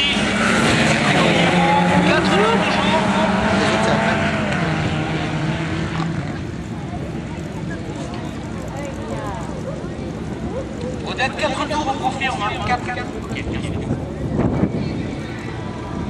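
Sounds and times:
buggy engines racing: 0.0s - 16.0s.

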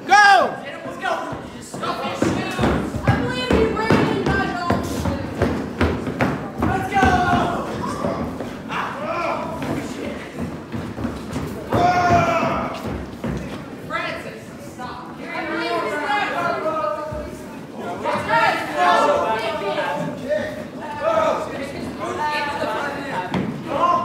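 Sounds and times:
boys shouting: 0.0s - 5.3s, 6.6s - 10.0s, 11.6s - 13.0s, 15.2s - 24.0s
feet stamping on wooden floor: 1.1s - 13.8s.

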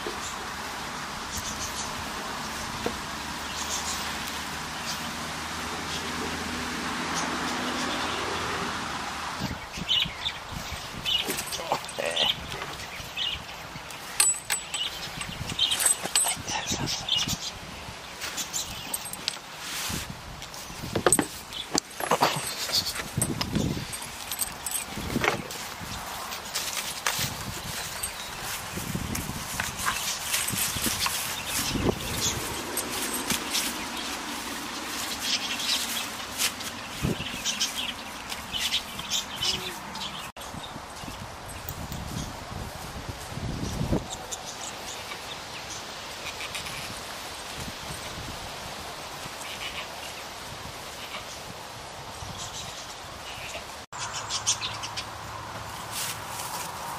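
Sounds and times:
goats moving and nibbling: 0.0s - 8.2s, 9.4s - 56.9s
rustling and shuffling on straw: 0.1s - 6.3s, 10.5s - 40.2s, 41.1s - 54.4s, 55.4s - 56.9s
small birds chirping: 1.2s - 6.2s, 9.4s - 19.4s, 20.5s - 42.4s.

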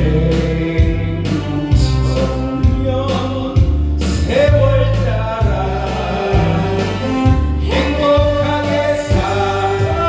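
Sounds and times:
karaoke backing track: 0.0s - 10.0s
man singing into microphone: 0.0s - 10.0s.

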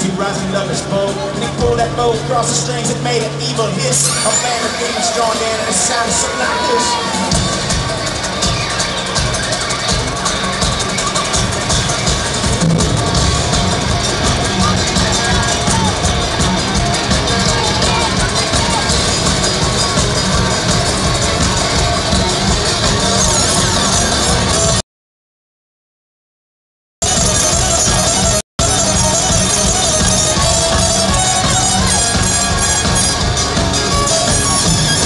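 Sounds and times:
driving drum beat: 0.0s - 3.8s, 5.7s - 24.8s, 27.0s - 35.0s
country-rock band playing: 0.0s - 24.8s, 27.0s - 35.0s
electric guitar: 27.0s - 35.0s
fiddle: 27.4s - 35.0s.

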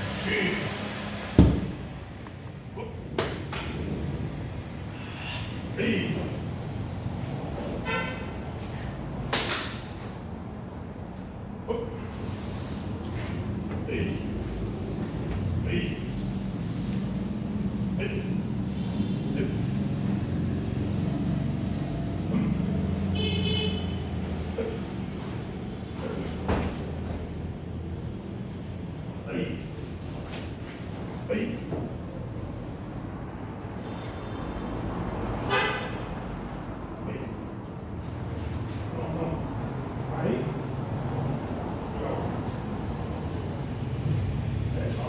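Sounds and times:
engine low rumble: 0.0s - 45.0s
vehicle horn toot: 7.7s - 8.4s, 23.0s - 24.3s, 35.4s - 36.2s
sharp crack of karate strike: 9.3s - 9.9s.

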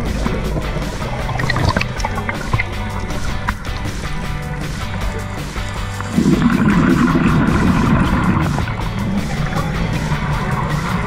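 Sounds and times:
exhaled bubbles underwater: 0.0s - 4.6s, 5.9s - 11.0s.

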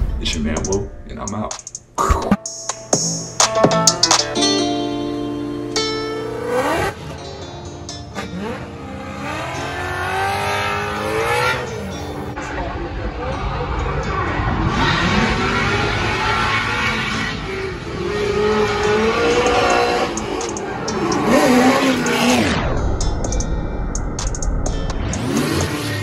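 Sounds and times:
car engines revving: 5.3s - 23.5s, 24.1s - 26.0s.

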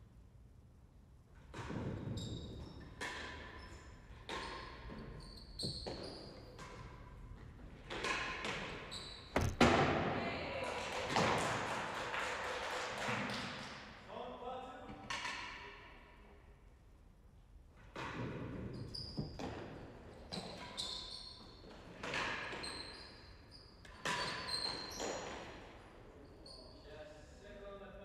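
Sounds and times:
ball bouncing off floor and walls: 7.9s - 10.2s
ball struck by racquets: 9.4s - 10.2s.

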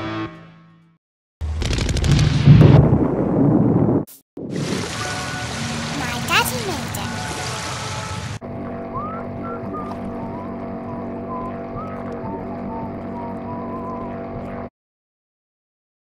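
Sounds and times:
personal watercraft engine running: 6.8s - 14.7s.

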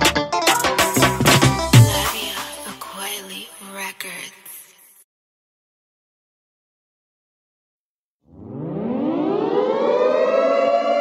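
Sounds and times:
siren wail: 8.2s - 11.0s.

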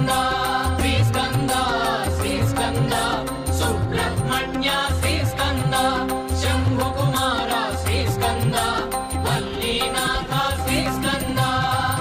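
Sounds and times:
devotional chant sung over music: 0.0s - 12.0s.

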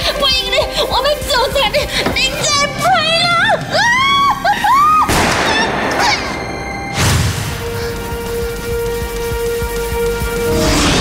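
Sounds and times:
woman screaming and wailing: 2.8s - 6.5s.

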